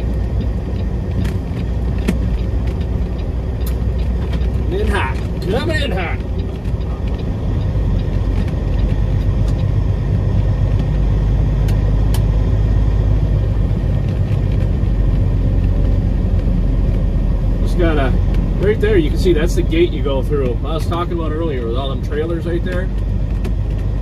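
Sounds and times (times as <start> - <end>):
diesel truck engine droning: 0.0 - 24.0.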